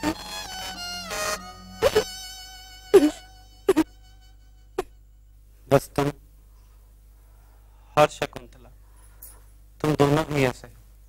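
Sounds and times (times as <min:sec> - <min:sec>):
held high music note: 0:00.0 - 0:05.2.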